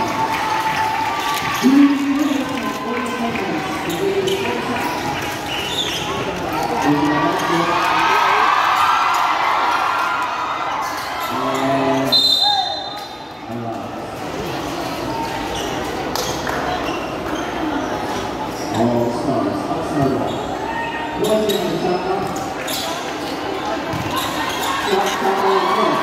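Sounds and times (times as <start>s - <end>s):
crowd noise: 0.0s - 26.0s
referee's whistle: 12.1s - 13.2s
basketball bouncing on court: 23.8s - 24.3s.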